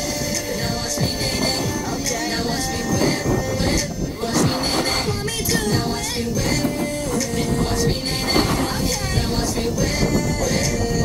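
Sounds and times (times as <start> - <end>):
music playing: 0.0 - 11.0
snowboard edges scraping snow: 1.1 - 10.9.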